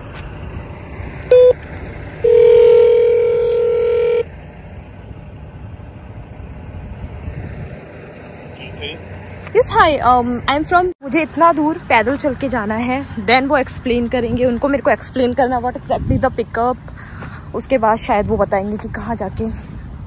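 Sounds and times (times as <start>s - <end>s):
intercom button beep: 1.3s - 1.6s, 2.2s - 4.2s
intercom ringing tone: 1.3s - 1.6s, 2.2s - 4.2s.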